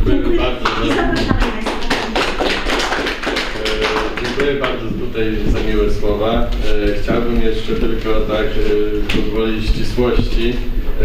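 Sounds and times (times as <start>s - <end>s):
audience applauding: 0.4s - 4.9s.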